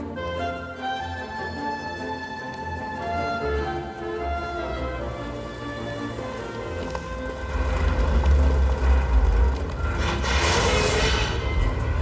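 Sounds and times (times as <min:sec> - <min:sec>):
background music: 0:00.0 - 0:12.0
truck engine rumbling: 0:01.8 - 0:12.0
truck passing whoosh: 0:05.8 - 0:12.0.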